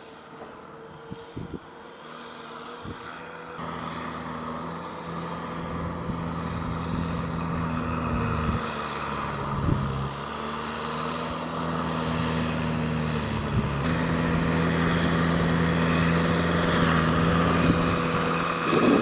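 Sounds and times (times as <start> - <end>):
tractor diesel engine running: 0.0 - 19.0.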